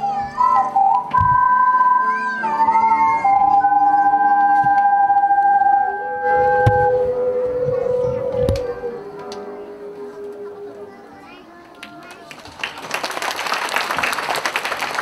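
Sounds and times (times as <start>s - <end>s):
ocarina ensemble playing slow tune: 0.0s - 11.8s.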